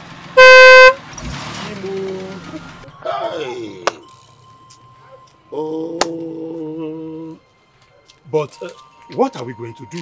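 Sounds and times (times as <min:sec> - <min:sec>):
car horn blast: 0:00.4 - 0:01.0.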